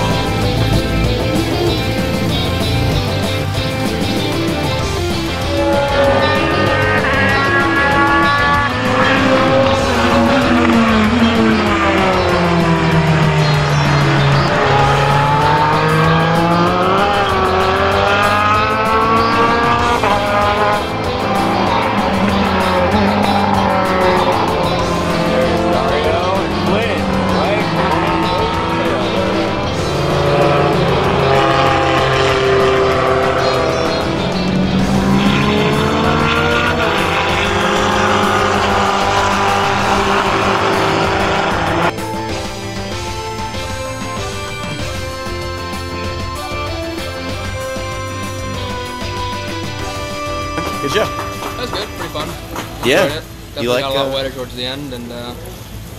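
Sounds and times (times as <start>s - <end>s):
race car engines passing: 0.0s - 55.9s.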